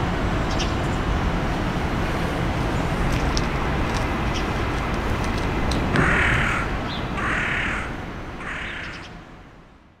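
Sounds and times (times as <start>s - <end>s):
low traffic rumble: 0.0s - 10.0s
crow cawing: 6.0s - 9.1s.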